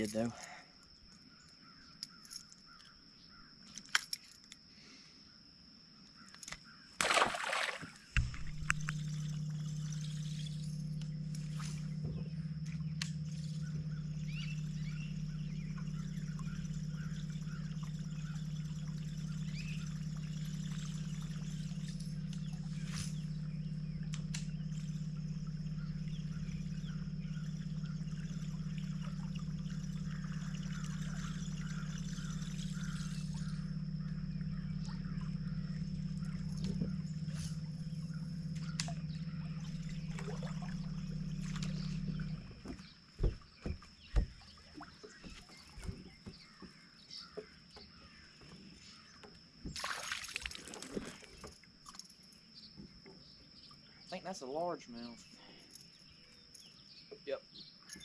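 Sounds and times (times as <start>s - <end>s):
electric boat motor humming: 6.4s - 56.9s
water sound: 7.0s - 46.1s, 49.7s - 51.6s.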